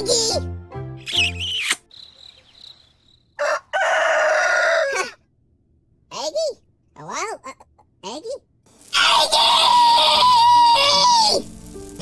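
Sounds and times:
cartoon child screaming: 8.9 - 11.5.

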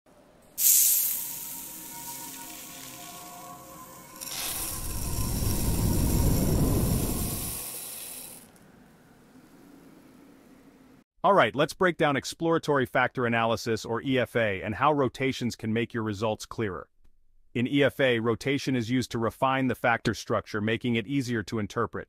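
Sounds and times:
bright hit sound effect: 0.6 - 8.4
whoosh with deep rumble: 4.7 - 7.7.

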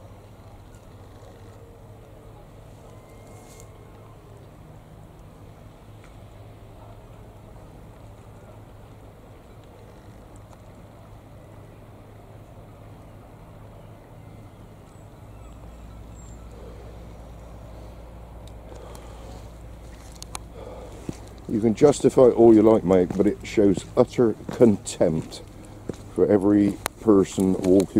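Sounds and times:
low outdoor rumble: 0.0 - 27.9.

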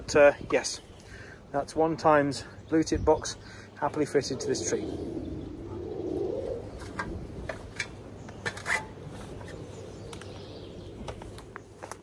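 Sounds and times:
faint outdoor background: 0.0 - 12.0
pigeon cooing: 4.0 - 7.5.

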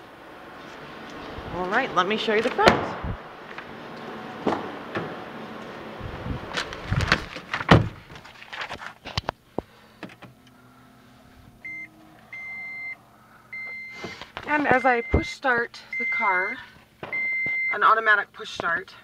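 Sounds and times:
knocks and thumps in car: 6.9 - 8.2.

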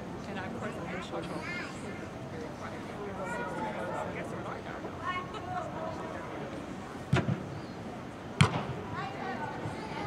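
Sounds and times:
soccer ball kicked: 8.4 - 8.7.

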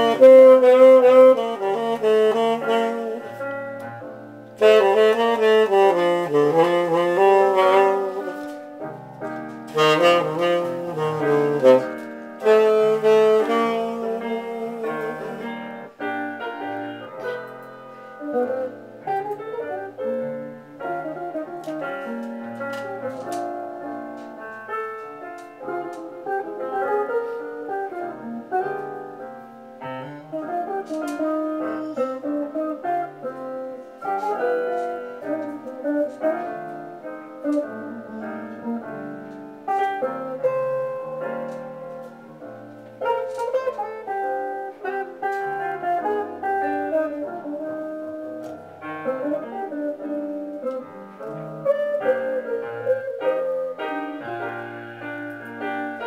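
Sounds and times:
piano accompaniment: 0.0 - 56.0
saxophone jazz ballad: 0.0 - 56.0.

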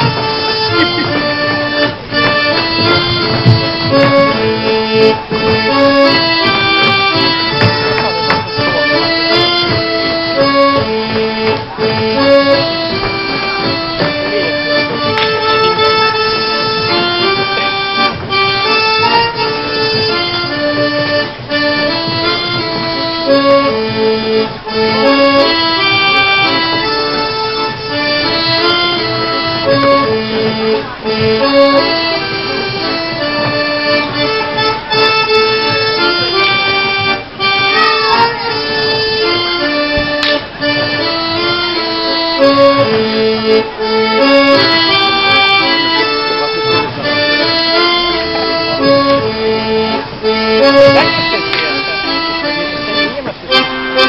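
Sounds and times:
accordion folk dance music: 0.0 - 54.0.

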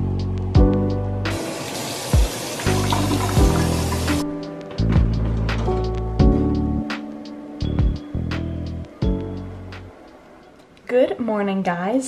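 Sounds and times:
background music with kick drums: 0.0 - 1.5, 2.1 - 9.9
faucet water running into sink: 1.3 - 4.3.

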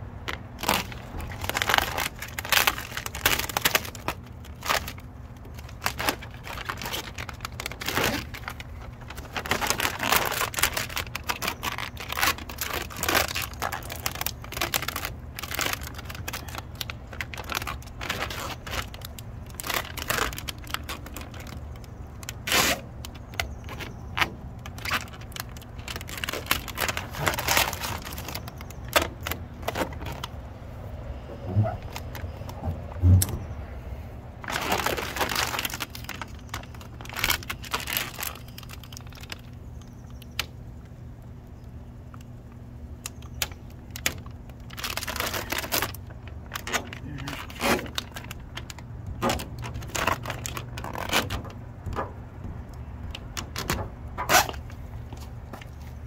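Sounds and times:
plastic tape peeling and crinkling: 0.2 - 33.5, 34.4 - 56.0.

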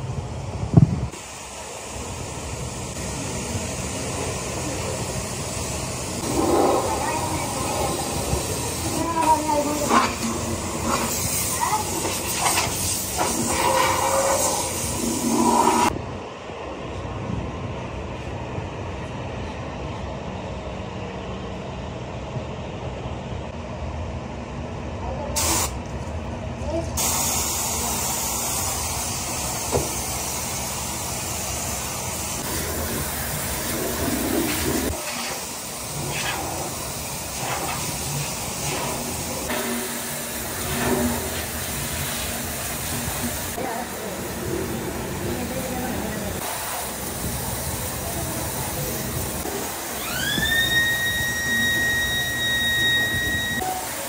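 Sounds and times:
spray gun hissing: 10.4 - 15.9, 25.4 - 25.8, 27.0 - 44.2.

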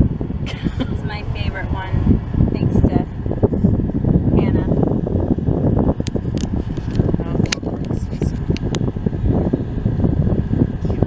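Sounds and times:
low rumble inside car: 0.0 - 11.0.

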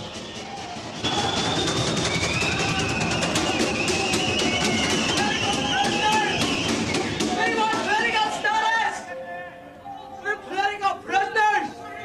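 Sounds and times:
music with drums and percussion: 0.0 - 8.3.

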